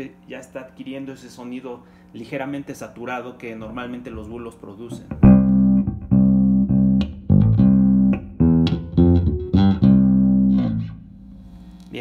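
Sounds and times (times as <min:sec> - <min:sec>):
plucked electric bass notes: 0:04.1 - 0:11.6.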